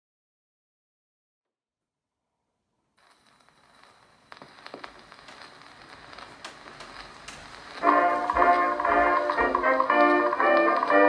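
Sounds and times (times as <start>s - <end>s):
record surface hiss: 2.8s - 11.0s
record crackles and clicks: 3.0s - 11.0s.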